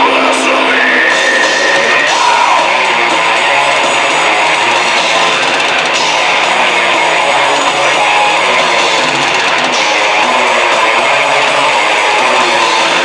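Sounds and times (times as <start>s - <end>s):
bass guitar: 0.0s - 13.0s
distorted electric guitars: 0.0s - 13.0s
drum kit: 0.0s - 13.0s.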